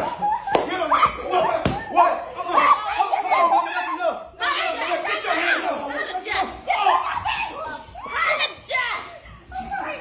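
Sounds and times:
high-pitched excited shouting: 0.7 - 10.0.

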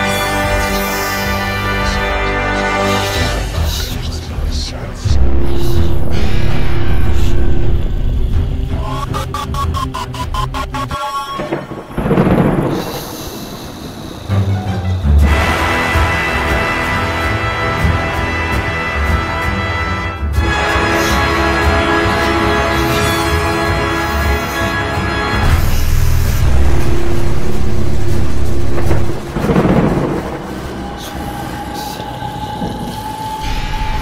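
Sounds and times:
thunder crack and rumble: 5.1 - 8.8, 11.3 - 17.0, 25.4 - 34.0.

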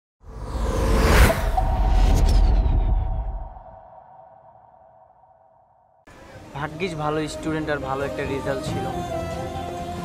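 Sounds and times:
whoosh: 0.2 - 5.9.

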